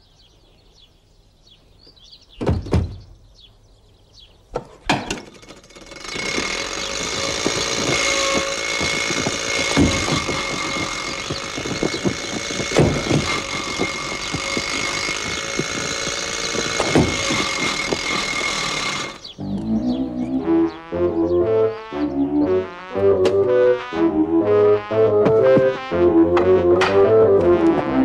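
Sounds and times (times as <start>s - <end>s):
heavy thumps: 4.6s - 19.3s, 24.9s - 28.0s
car engine running: 5.8s - 19.4s.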